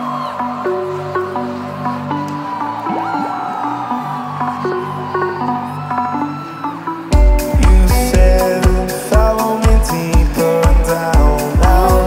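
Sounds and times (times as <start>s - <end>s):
held synthesizer chords: 0.0s - 12.0s.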